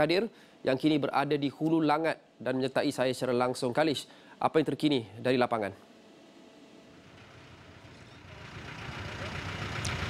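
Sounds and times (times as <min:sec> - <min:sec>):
vehicle engine idling: 0:06.9 - 0:10.0
street noise: 0:07.0 - 0:10.0.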